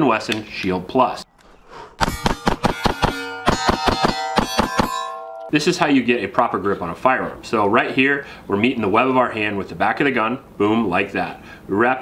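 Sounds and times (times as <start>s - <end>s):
rapid pistol shots: 2.0s - 5.0s
steel targets ringing: 2.0s - 5.5s.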